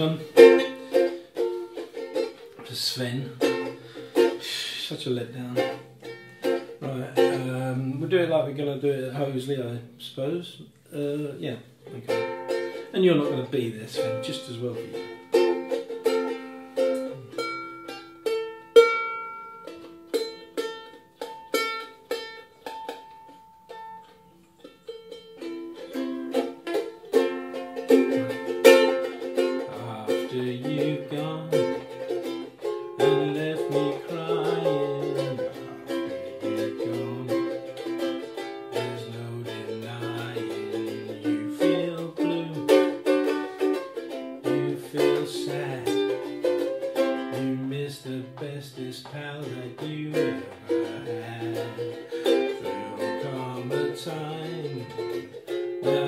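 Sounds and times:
ukulele playing: 0:00.0 - 0:10.0, 0:11.0 - 0:56.0
man humming: 0:28.0 - 0:28.6, 0:33.0 - 0:37.9, 0:50.1 - 0:55.2.

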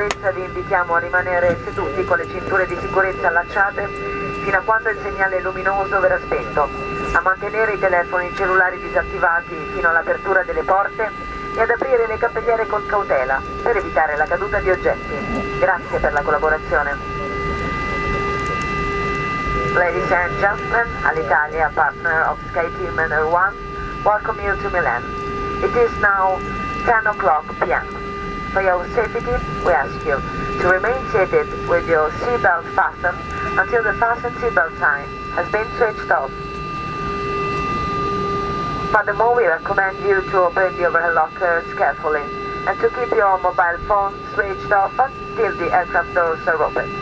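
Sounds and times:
aircraft cabin low rumble: 0:00.0 - 0:47.0
high engine whine: 0:00.0 - 0:47.0.

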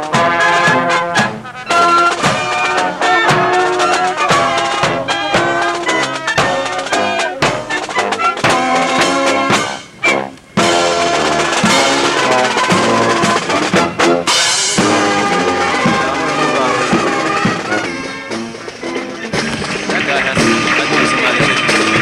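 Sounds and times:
marching band playing: 0:00.0 - 0:22.0.

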